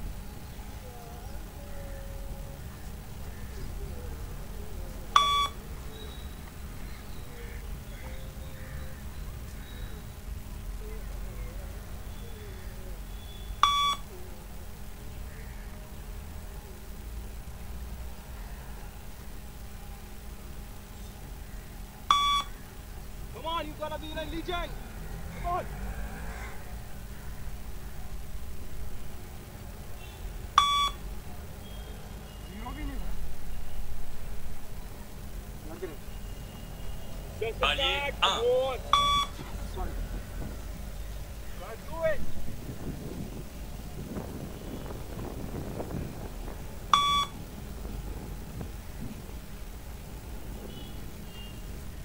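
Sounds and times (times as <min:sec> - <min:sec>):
short electronic beep: 0:05.2 - 0:05.6, 0:13.6 - 0:14.1, 0:22.1 - 0:22.5, 0:30.6 - 0:31.0, 0:38.9 - 0:39.4, 0:47.0 - 0:47.3
low wind rumble on microphone: 0:39.4 - 0:52.0.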